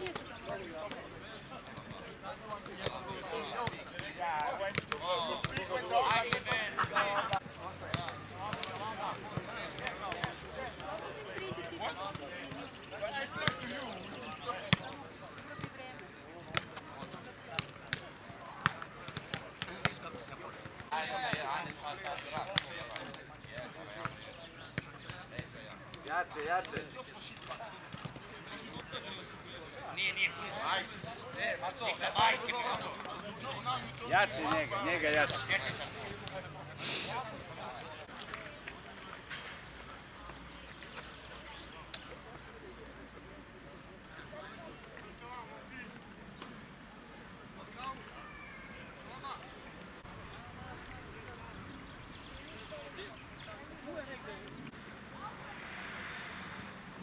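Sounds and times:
players calling out: 0.0s - 40.6s.

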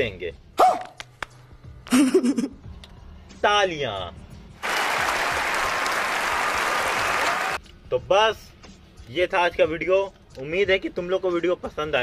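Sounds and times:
many hands clapping: 4.6s - 7.6s.

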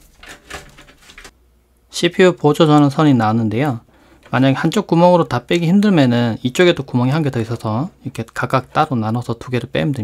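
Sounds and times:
cables scraping and rustling: 0.0s - 1.4s.

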